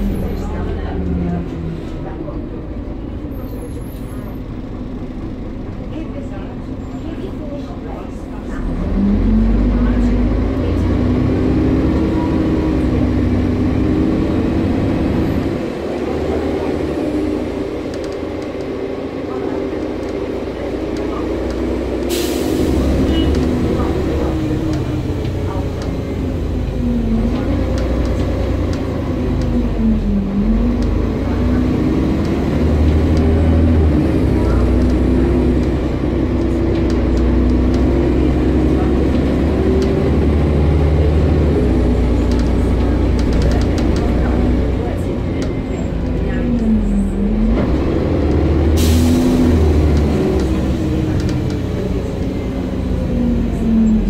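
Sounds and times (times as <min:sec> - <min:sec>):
bus engine rumbling: 0:00.0 - 0:54.0.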